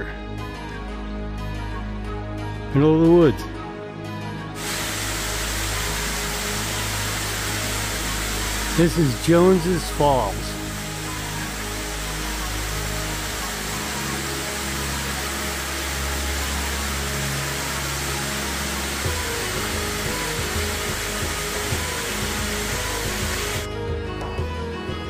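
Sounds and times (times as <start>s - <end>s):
background music: 0.0s - 25.0s
waterfall rushing: 4.6s - 23.7s.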